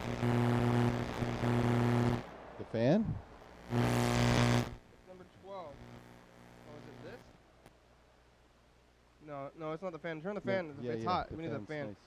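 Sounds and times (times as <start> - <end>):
loud electrical buzz with hiss: 0.0 - 2.3, 3.1 - 7.4.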